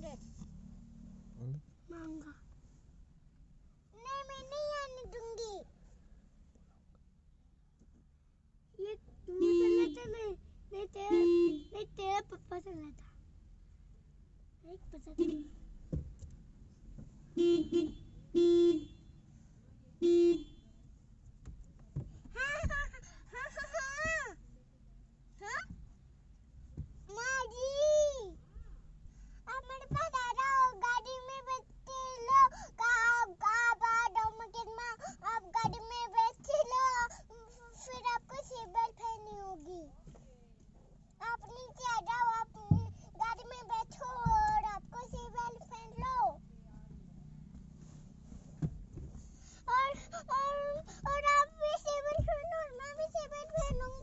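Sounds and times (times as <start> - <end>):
car horn honk: 11.1 - 11.8, 17.4 - 19.2, 20.0 - 20.7
small child singing: 41.2 - 46.4, 49.7 - 54.0
dull thumps: 42.2 - 46.2, 48.5 - 49.3, 50.9 - 54.0.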